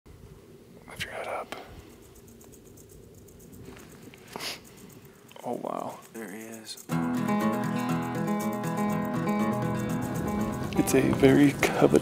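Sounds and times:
low steady background noise: 0.1s - 7.0s
man whispering: 0.8s - 2.0s, 5.4s - 6.9s.

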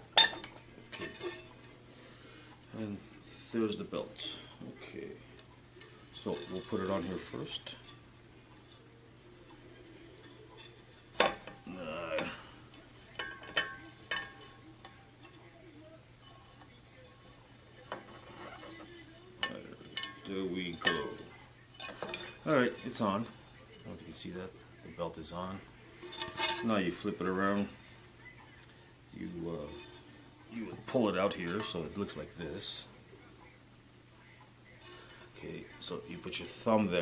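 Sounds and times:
faint rubbing and scraping: 0.9s - 33.0s, 34.2s - 37.0s.

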